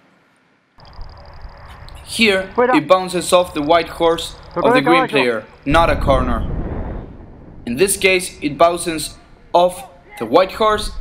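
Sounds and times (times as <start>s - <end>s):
steady low rumble: 0.8s - 9.8s.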